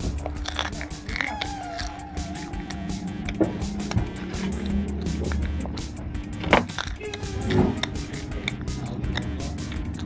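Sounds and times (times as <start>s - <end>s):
crunchy snack chewing: 0.0s - 10.0s.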